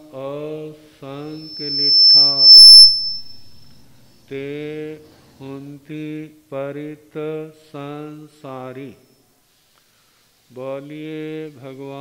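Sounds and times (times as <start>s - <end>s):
brief crackle: 1.4s - 3.8s
high-pitched feedback whistle: 1.4s - 3.9s.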